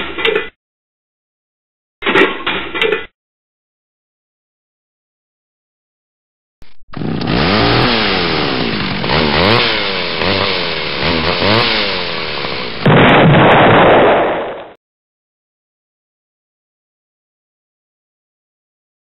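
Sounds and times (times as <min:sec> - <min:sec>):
blender motor revving: 0:06.7 - 0:12.8
explosion-like burst: 0:12.8 - 0:14.8.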